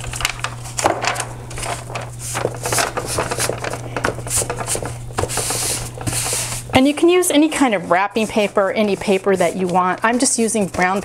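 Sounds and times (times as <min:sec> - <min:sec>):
paper crinkling and rustling: 0:00.0 - 0:11.0
steady low hum: 0:00.0 - 0:11.0.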